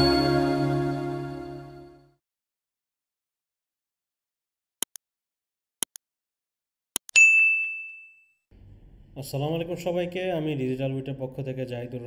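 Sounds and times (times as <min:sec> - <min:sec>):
notification bell ding: 0:00.0 - 0:01.6, 0:07.1 - 0:08.3.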